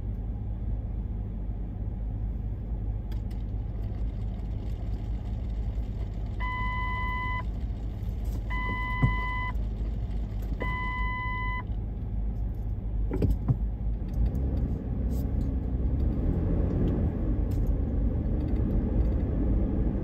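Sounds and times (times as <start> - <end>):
street traffic rumbling: 0.0 - 20.0
long electronic beeps: 8.5 - 9.5, 10.6 - 11.6.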